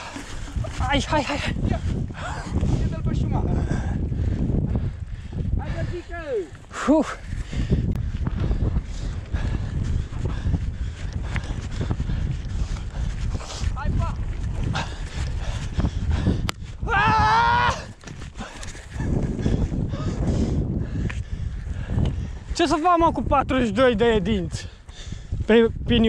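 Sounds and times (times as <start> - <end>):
bike rolling over rough ground: 0.0 - 2.8, 10.9 - 15.8
wind on microphone: 0.0 - 26.0
person shouting: 16.8 - 17.9.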